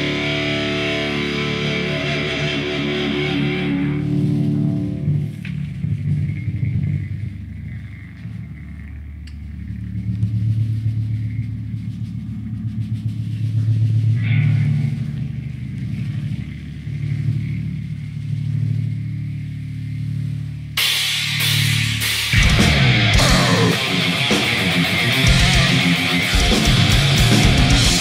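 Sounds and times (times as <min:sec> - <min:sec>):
electric bass sustained low notes: 0:00.0 - 0:28.0.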